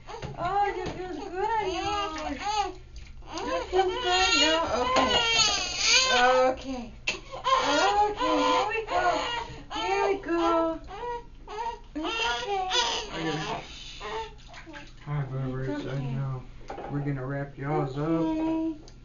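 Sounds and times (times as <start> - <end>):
newborn baby crying: 0.0 - 14.8
adult speaking in a low voice: 15.0 - 18.7.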